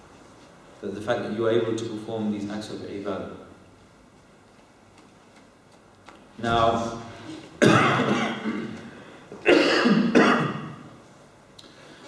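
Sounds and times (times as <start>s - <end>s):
man coughing: 7.2s - 10.9s.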